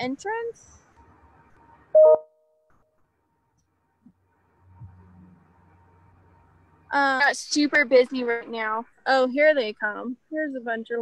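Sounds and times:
short electronic beep: 2.0s - 2.4s.

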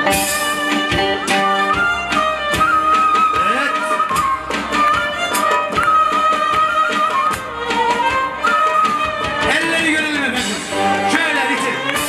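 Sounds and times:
plucked lutes and guitar: 0.0s - 12.0s
violin melody: 0.0s - 12.0s.

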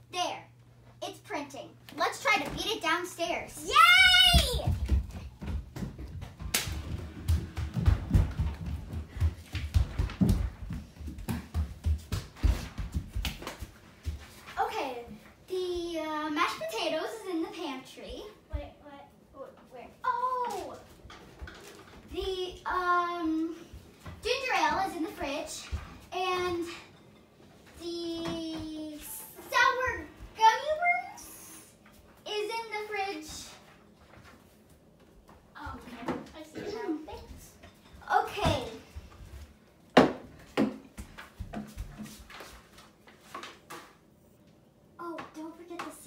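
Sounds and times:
footsteps: 3.6s - 15.8s, 33.2s - 44.0s.

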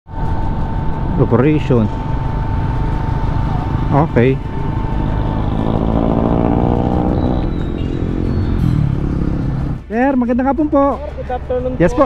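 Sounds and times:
motorcycle engine running: 0.1s - 10.1s.

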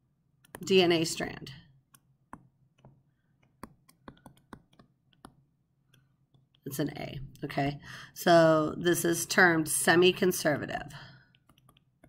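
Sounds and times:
stylus tapping on tablet: 0.4s - 0.8s, 1.9s - 6.6s, 11.3s - 12.0s.

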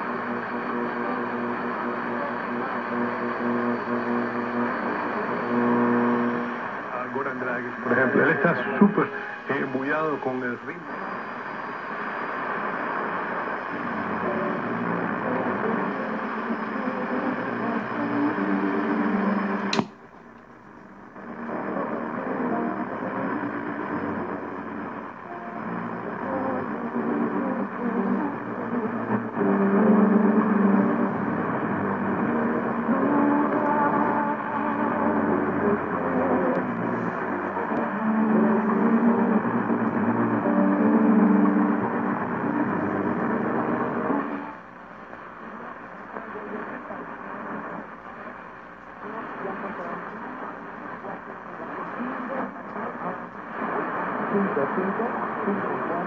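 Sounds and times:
radio whistles and tones: 0.0s - 19.8s
radio static: 0.0s - 56.0s
broadcast voice through speaker: 6.9s - 11.0s
sharp click: 19.7s - 20.0s.

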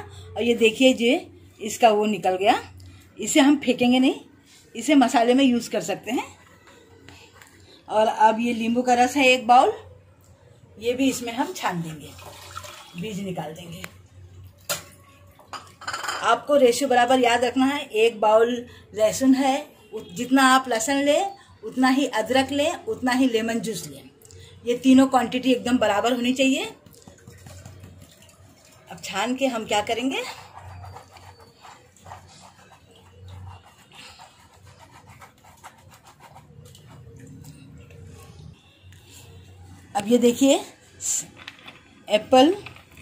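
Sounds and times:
hand rubbing wet pulp on mesh: 29.6s - 38.1s.

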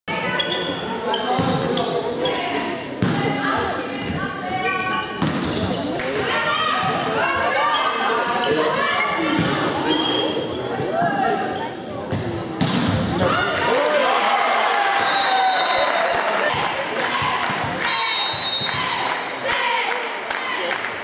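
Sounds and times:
players calling and shouting: 0.1s - 20.8s.

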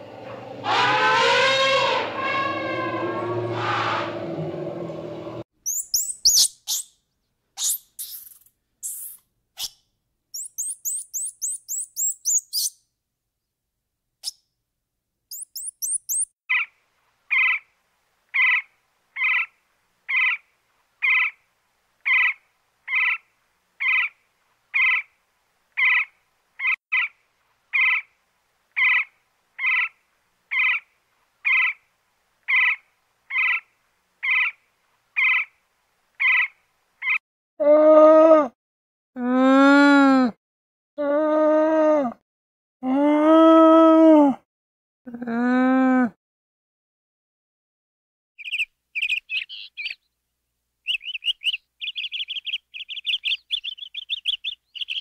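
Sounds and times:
monkey chirping: 5.6s - 7.0s, 7.6s - 12.8s, 15.3s - 16.7s, 48.4s - 50.0s, 50.9s - 55.0s
woodpecker calling: 5.6s - 7.0s, 7.6s - 9.8s, 10.4s - 12.8s, 15.3s - 16.7s, 17.3s - 17.6s, 18.3s - 19.5s, 20.1s - 20.4s, 21.0s - 21.4s, 23.8s - 24.1s, 24.8s - 25.1s, 25.8s - 28.1s, 28.8s - 29.9s, 30.5s - 30.8s, 31.4s - 31.8s, 32.5s - 34.6s, 35.2s - 35.5s, 36.2s - 37.2s, 48.4s - 50.1s, 50.8s - 55.0s.

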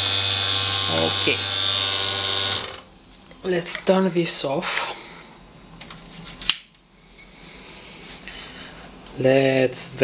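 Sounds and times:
equipment running hum: 0.0s - 10.0s.

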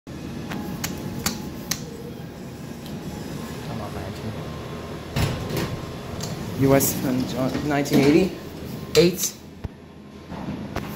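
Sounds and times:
steady low hum: 0.1s - 10.9s.

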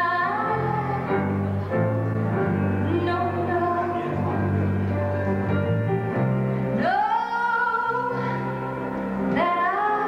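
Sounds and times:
keyboard accompaniment: 0.0s - 10.0s
woman singing gospel song: 6.8s - 8.5s, 9.3s - 10.0s.

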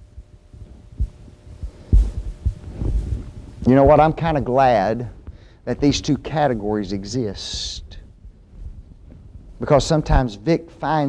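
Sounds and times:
low dull thumps: 0.0s - 10.3s
faint low room rumble: 0.0s - 11.0s
speech: 3.6s - 8.1s, 9.6s - 11.0s.

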